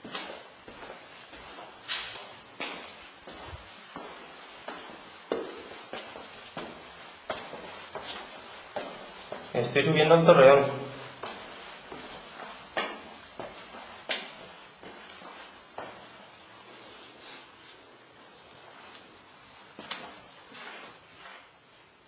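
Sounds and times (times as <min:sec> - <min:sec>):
footsteps climbing stairs: 0:00.0 - 0:16.8
steady background hiss: 0:00.0 - 0:22.0.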